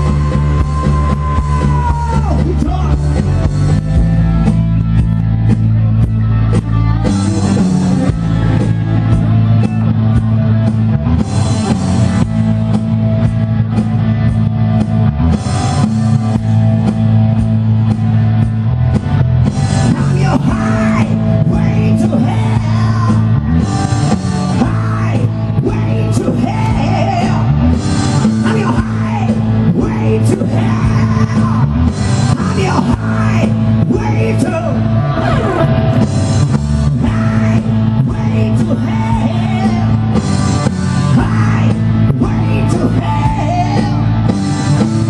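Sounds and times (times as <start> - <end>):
bass guitar: 0.0 - 45.0
drum kit: 0.0 - 45.0
electric guitar: 0.0 - 45.0
person singing: 19.8 - 23.4, 37.0 - 40.2, 41.0 - 44.3.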